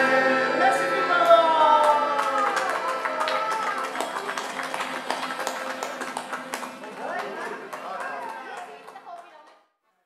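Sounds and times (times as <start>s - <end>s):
acoustic guitar strumming: 0.0s - 4.2s
accordion: 0.0s - 8.0s
audience clapping: 1.2s - 9.7s.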